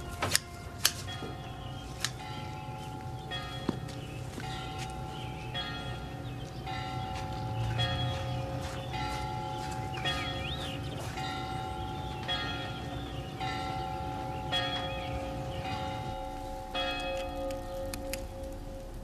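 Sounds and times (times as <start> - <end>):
church bells ringing: 0.0 - 19.0.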